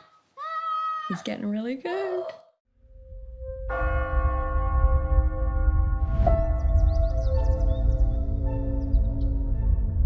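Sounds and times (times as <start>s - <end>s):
low rumble: 2.9s - 10.0s.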